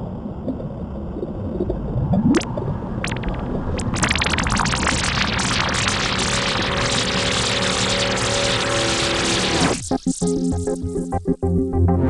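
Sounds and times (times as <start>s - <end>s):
loud noise hiss: 3.9s - 10.1s
low electronic chord: 5.8s - 12.0s.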